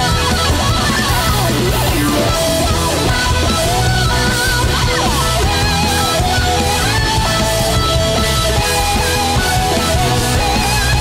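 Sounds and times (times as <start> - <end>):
distorted electric guitar: 0.0 - 11.0
drum kit: 0.0 - 11.0
electric violin lead: 0.0 - 11.0.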